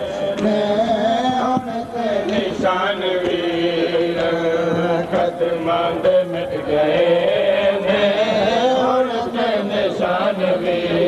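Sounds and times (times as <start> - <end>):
man chanting a lament: 0.0 - 11.0.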